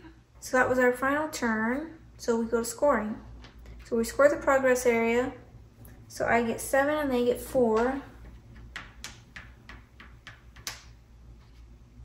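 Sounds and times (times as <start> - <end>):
game piece tapping on board: 8.6 - 11.0.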